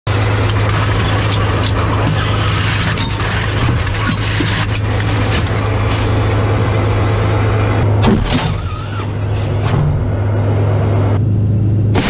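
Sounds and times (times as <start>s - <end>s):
tank engine droning: 0.0s - 12.0s.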